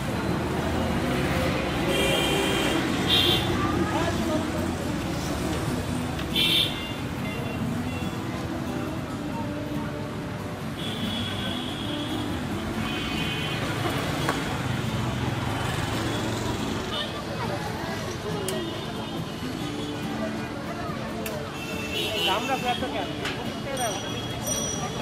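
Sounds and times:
traffic: 0.0 - 25.0
people talking: 16.6 - 25.0.

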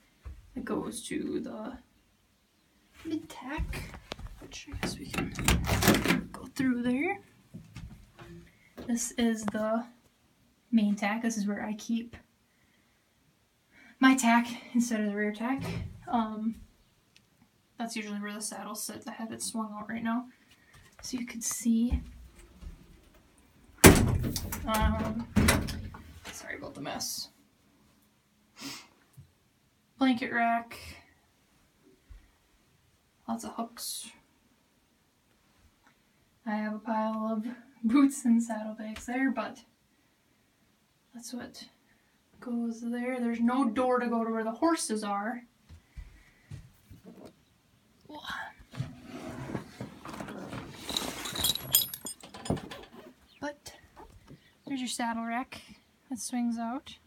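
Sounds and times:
metallic clinks of buckles: 50.8 - 53.0.

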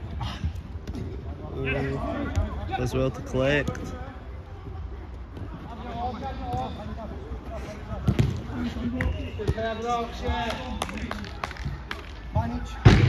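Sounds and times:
men's voices: 0.0 - 13.0.

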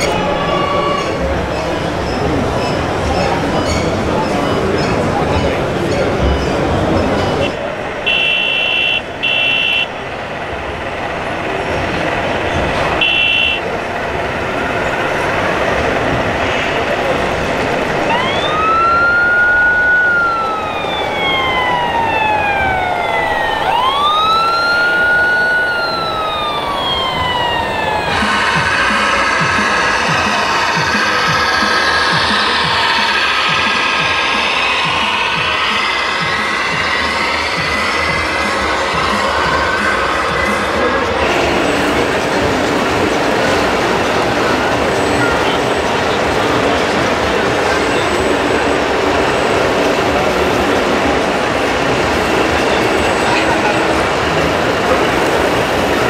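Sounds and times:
toy fire truck siren wailing: 7.4 - 9.9, 13.0 - 13.7, 18.1 - 41.2.

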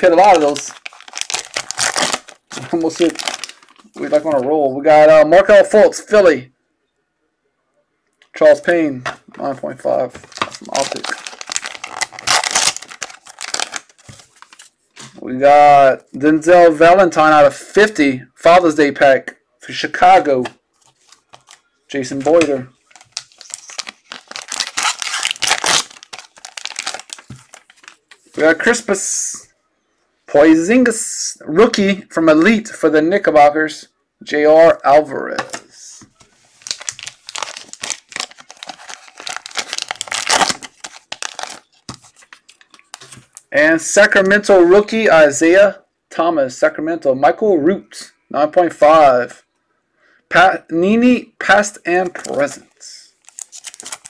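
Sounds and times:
plastic wrapping crinkling: 0.0 - 4.4, 10.2 - 14.9, 20.7 - 28.4, 36.2 - 43.5, 53.2 - 54.0.

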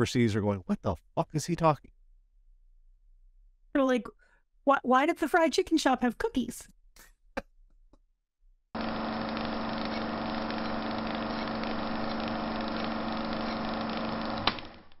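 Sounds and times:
mechanical droning hum: 8.8 - 15.0.

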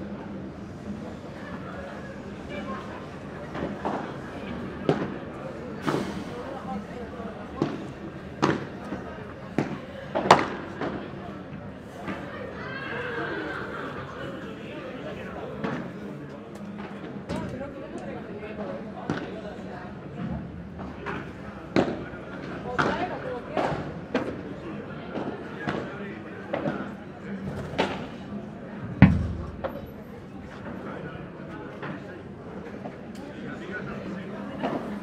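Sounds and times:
murmur of voices: 0.0 - 35.0
heavy thud: 29.0 - 29.9.

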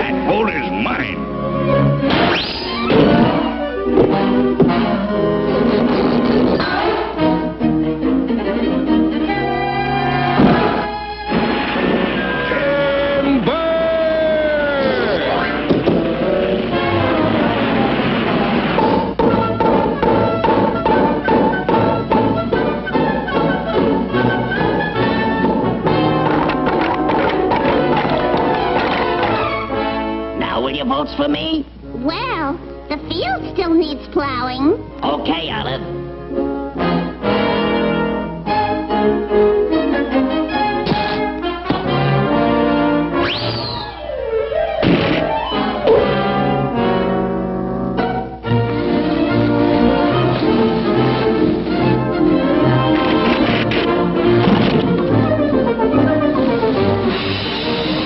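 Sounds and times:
orchestral cartoon music with brass: 0.0 - 13.5, 14.4 - 30.8, 34.8 - 58.0
wood block percussion hits: 18.8 - 22.7
whistle-like sweep: 43.2 - 44.2.

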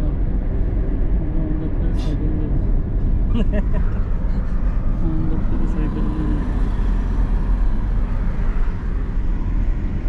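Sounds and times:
car road noise rumble: 0.0 - 10.0.

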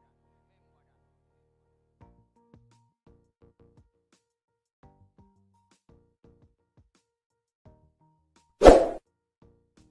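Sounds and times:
faint background music: 0.0 - 4.2
loud pop sound effect: 8.6 - 9.0.

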